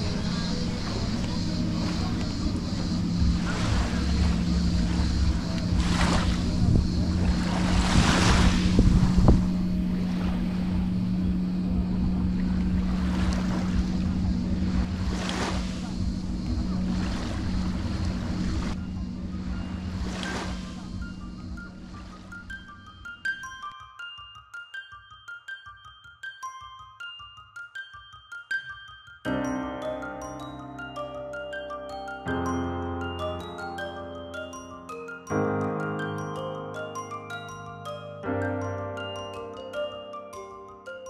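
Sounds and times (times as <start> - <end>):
small waves washing onto beach: 0.0 - 22.6
steady low hum: 0.0 - 23.0.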